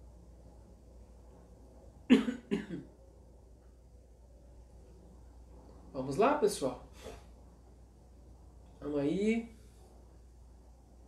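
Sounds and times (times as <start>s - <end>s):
man coughing: 2.1s - 2.9s.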